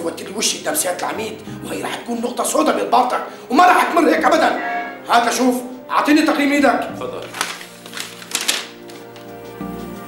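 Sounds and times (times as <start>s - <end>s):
background music sustained notes: 0.0s - 10.0s
paper rustling: 7.2s - 9.1s.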